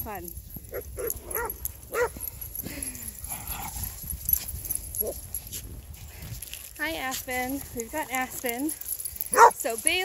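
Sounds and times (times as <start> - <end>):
small dogs yipping: 0.7 - 2.2, 9.3 - 9.6.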